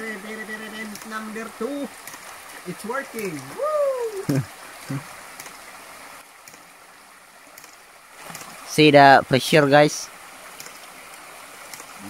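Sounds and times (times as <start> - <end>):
river water running over rocks: 0.0 - 12.0
brief vocal sounds: 3.5 - 5.1.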